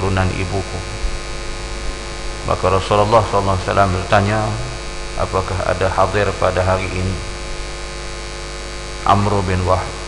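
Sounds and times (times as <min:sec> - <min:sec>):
person speaking: 0:00.0 - 0:01.1, 0:02.4 - 0:07.5, 0:09.0 - 0:10.0
electrical mains hum with hiss: 0:00.0 - 0:10.0.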